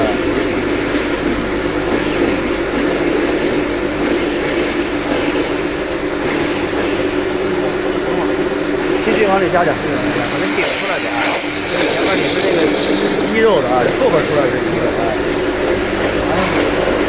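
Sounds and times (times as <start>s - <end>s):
electric grinding mill running: 0.0s - 17.0s.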